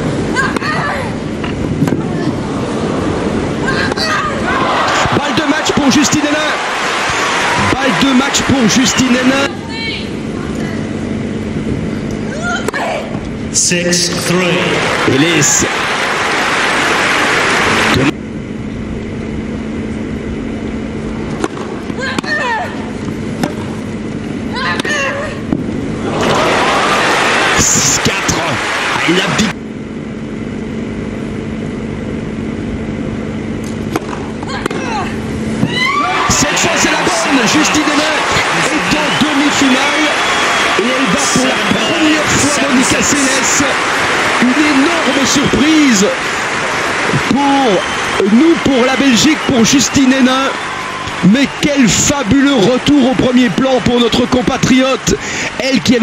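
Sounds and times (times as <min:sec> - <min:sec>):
crowd noise: 0:00.0 - 0:18.2, 0:21.2 - 0:29.6, 0:33.8 - 0:56.0
crowd applause and cheering: 0:02.4 - 0:09.5, 0:14.2 - 0:18.2, 0:26.0 - 0:29.6, 0:35.7 - 0:56.0.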